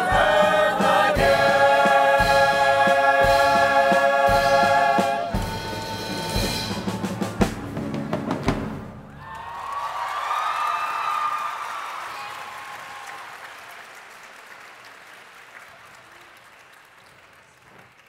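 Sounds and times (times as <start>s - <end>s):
final chord and drum hits: 0.0s - 9.0s
audience applause: 9.1s - 18.0s.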